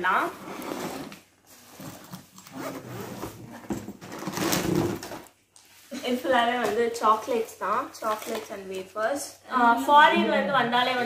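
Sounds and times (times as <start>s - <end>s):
suitcase zipper rasping: 0.3s - 5.2s.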